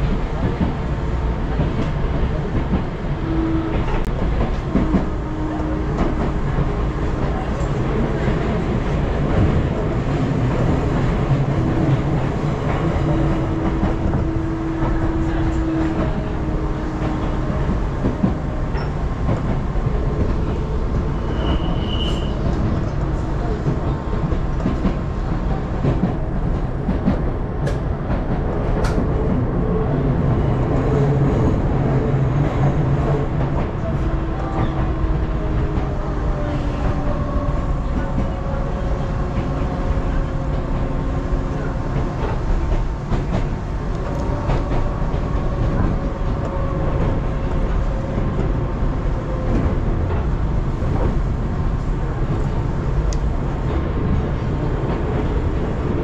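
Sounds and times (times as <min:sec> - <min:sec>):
train wheels rumbling on rails: 0:00.0 - 0:56.0.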